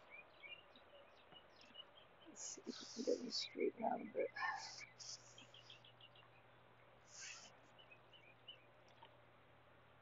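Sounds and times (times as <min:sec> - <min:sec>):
faint bird chirps: 0:00.0 - 0:09.3.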